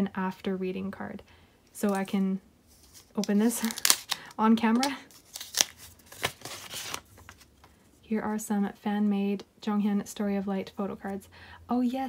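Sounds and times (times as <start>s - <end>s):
paper envelope rustling: 1.8s - 7.7s.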